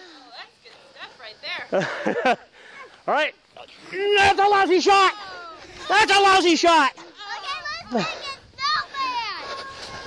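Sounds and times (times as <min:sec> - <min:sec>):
children shouting and squealing: 0:04.0 - 0:10.0.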